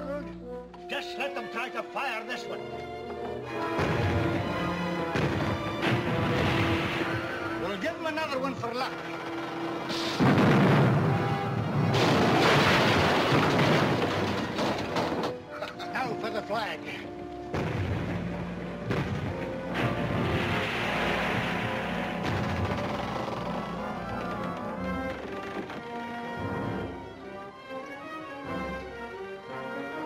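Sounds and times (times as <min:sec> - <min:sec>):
orchestral film score: 0:00.0 - 0:30.0
cannon blast: 0:03.7 - 0:04.5, 0:05.1 - 0:07.6, 0:09.9 - 0:14.8, 0:17.5 - 0:23.3.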